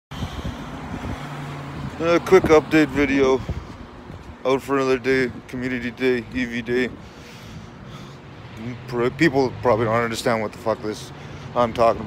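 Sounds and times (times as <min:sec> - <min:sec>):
wind buffeting microphone: 0:00.1 - 0:10.4.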